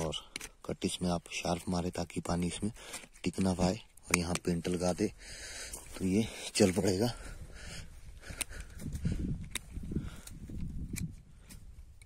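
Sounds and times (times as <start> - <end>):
rustling handling noise: 0.0 - 5.1.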